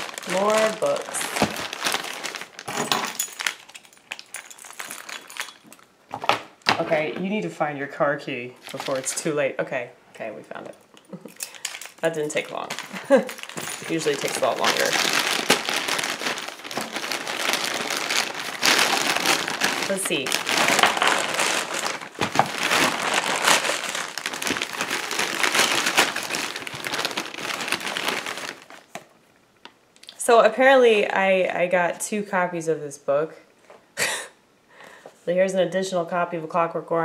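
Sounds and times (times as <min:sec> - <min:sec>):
packaging crinkling and rustling: 0:00.0 - 0:06.8, 0:08.6 - 0:09.4, 0:11.4 - 0:29.8
plastic mailer and objects handled: 0:00.0 - 0:07.3, 0:08.6 - 0:09.5, 0:11.1 - 0:29.2.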